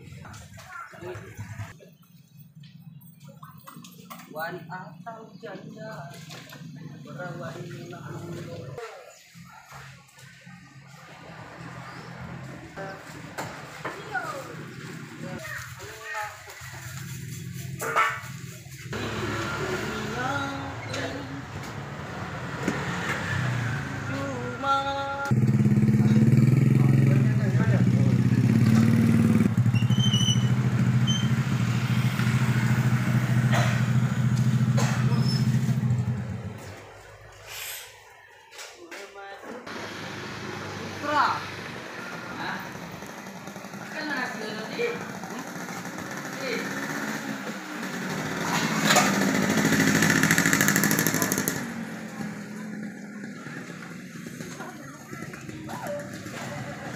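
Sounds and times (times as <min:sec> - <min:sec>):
people's voices: 0:00.0 - 0:31.3, 0:32.8 - 0:56.9
faint voices: 0:50.8 - 0:56.9.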